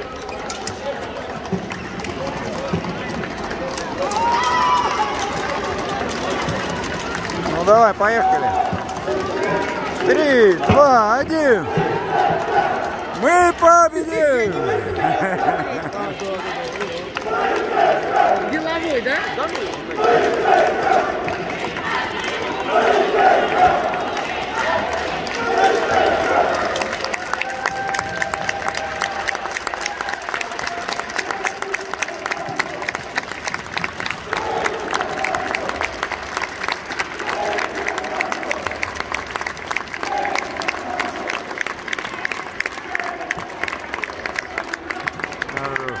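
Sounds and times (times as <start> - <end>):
crowd shouting: 4.0 - 29.1
scattered voices: 5.1 - 27.1
hand clapping: 19.3 - 46.0.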